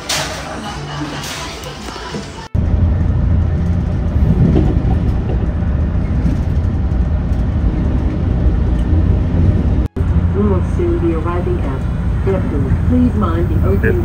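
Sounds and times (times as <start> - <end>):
train rumbling on rails: 0.0 - 14.0.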